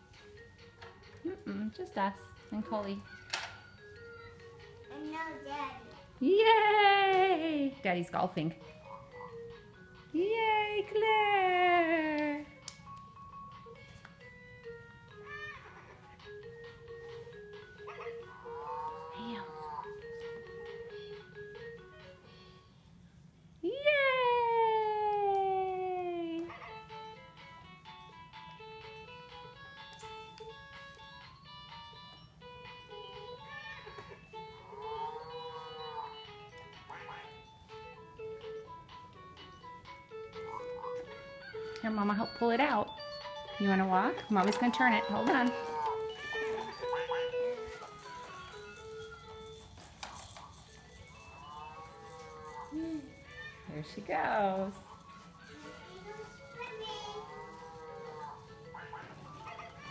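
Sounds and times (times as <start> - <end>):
electronic toy tune: 41.1 - 53.3.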